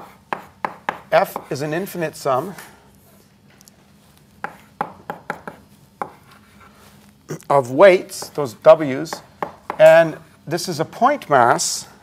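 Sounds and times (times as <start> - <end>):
chalk tapping on blackboard: 0.0 - 1.5, 4.4 - 6.3.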